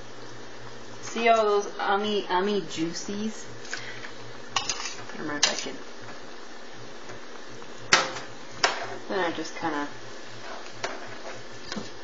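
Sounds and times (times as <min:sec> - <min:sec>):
metal tongs clacking on pan: 0:04.6 - 0:05.7.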